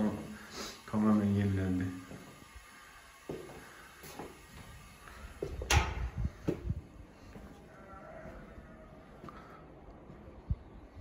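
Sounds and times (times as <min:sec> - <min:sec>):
footstep: 0:03.2 - 0:08.4
door clunk: 0:05.6 - 0:06.2.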